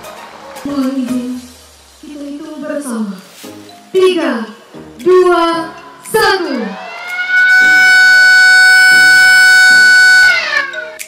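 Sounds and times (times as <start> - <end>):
siren wailing: 6.5 - 11.0.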